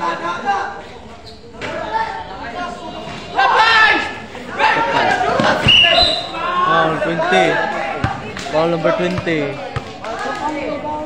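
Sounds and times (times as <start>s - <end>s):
players and spectators shouting: 0.0s - 11.0s.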